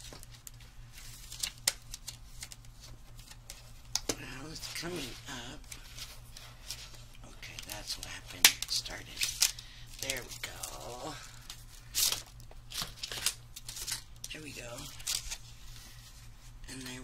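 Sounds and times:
plastic packaging crinkling: 4.6 - 15.8.

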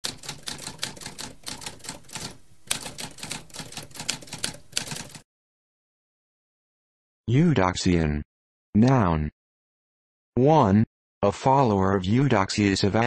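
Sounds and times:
typewriter keys striking: 0.0 - 5.2.

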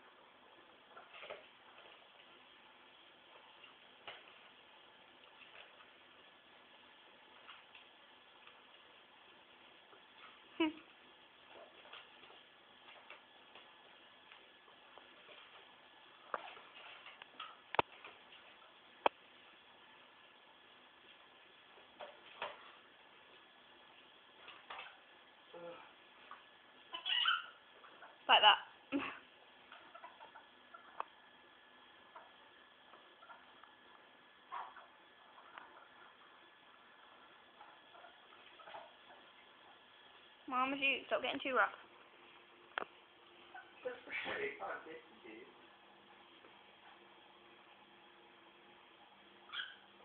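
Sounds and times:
ferrets scuffling: 0.6 - 25.2, 32.0 - 40.8
ferret squeak: 26.9 - 27.6, 49.5 - 49.8.

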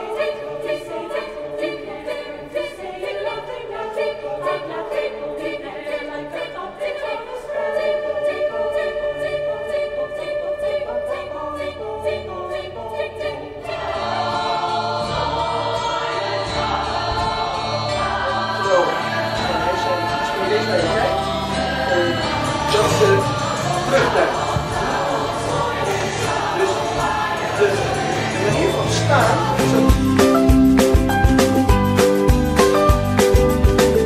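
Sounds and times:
women's choir singing: 0.0 - 30.6.

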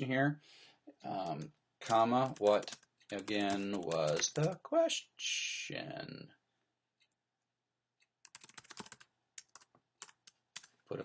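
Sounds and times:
typing on computer keyboard: 1.2 - 4.6, 8.2 - 10.8.

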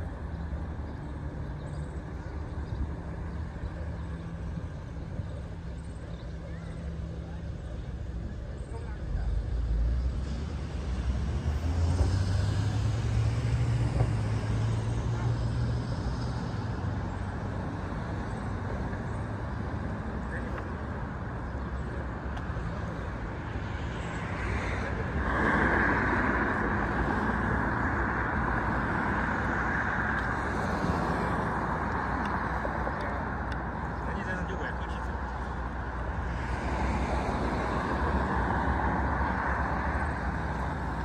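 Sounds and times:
city traffic: 0.0 - 41.0
vehicle engine humming: 0.0 - 41.0.

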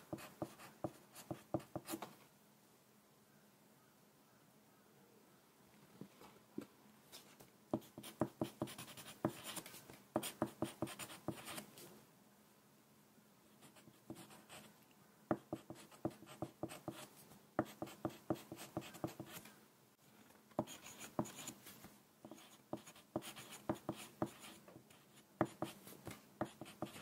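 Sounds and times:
pencil writing on paper: 0.1 - 2.0, 7.8 - 9.6, 10.2 - 11.6, 13.6 - 14.7, 15.3 - 19.4, 20.6 - 21.6, 22.2 - 25.8, 26.4 - 27.0.

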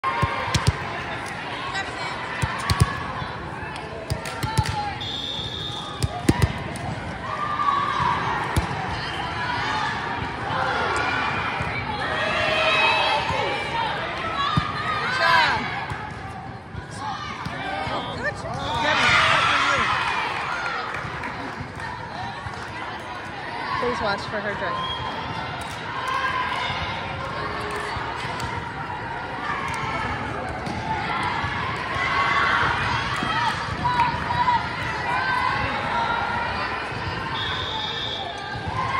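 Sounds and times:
voices calling out and cheering: 0.0 - 38.9
volleyball smacking and bouncing: 2.4 - 3.0.

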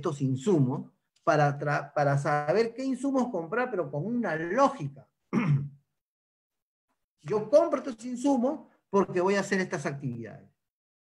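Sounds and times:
man clearing his throat: 5.3 - 5.8.

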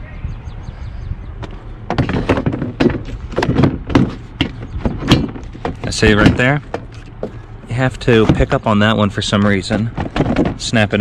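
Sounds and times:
plastic cooler clunking and clicking: 1.4 - 7.4, 8.1 - 8.6, 9.4 - 10.9.

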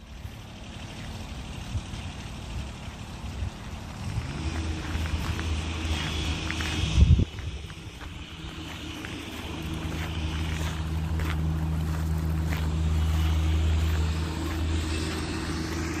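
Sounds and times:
low engine drone: 0.0 - 16.0.

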